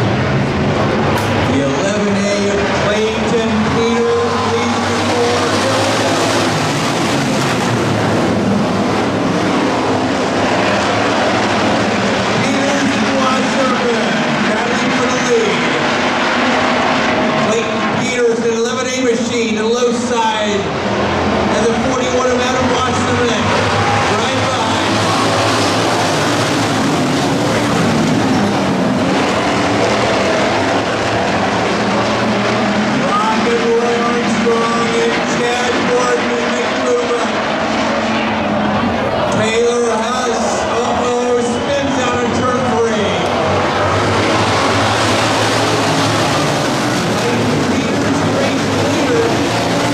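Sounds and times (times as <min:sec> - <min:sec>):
race car engines revving: 0:00.0 - 0:49.9.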